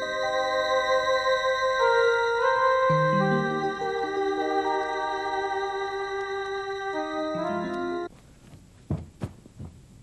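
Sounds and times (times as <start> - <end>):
steady background hum: 0.0 - 10.0
soft low thuds: 8.4 - 10.0.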